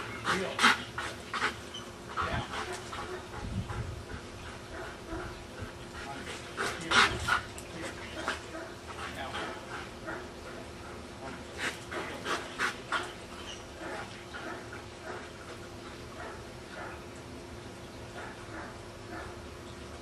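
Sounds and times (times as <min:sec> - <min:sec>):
dog panting: 0:00.0 - 0:17.0.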